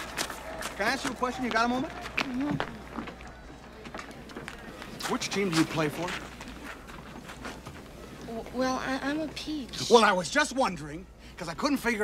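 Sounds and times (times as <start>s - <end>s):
light taps and footsteps: 0.0s - 8.6s
murmur of distant voices: 0.0s - 12.0s.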